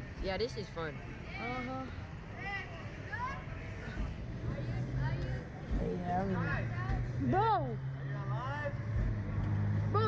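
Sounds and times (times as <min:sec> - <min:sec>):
ride machinery humming: 0:00.0 - 0:10.0.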